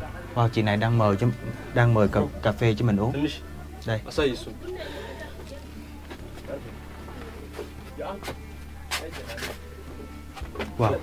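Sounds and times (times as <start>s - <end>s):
quiet voices: 0.0s - 11.0s.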